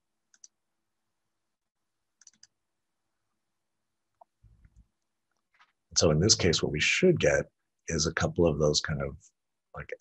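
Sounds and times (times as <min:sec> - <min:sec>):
faint computer clicks: 0:02.2 - 0:02.6.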